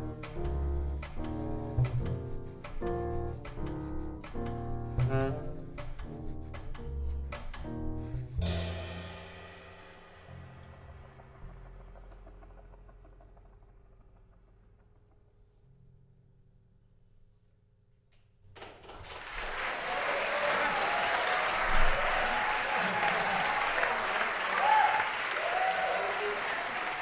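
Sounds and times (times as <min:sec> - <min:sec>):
jazz quartet playing chords: 0:00.0 - 0:09.7.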